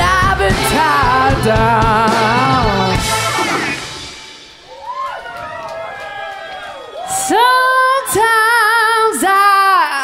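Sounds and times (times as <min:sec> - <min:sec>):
woman singing unaccompanied: 0:00.0 - 0:03.0, 0:07.3 - 0:10.0.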